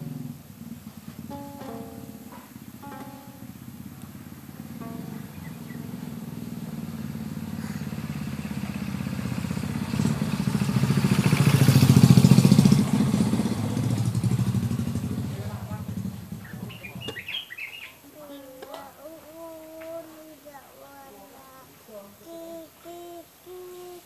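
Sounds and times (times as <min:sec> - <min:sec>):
vehicle engine passing by: 0:00.0 - 0:17.3.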